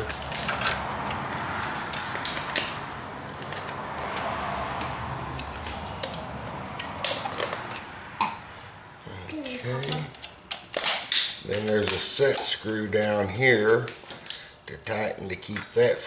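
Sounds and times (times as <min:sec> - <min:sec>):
wrench clicking on metal: 0:03.3 - 0:07.9.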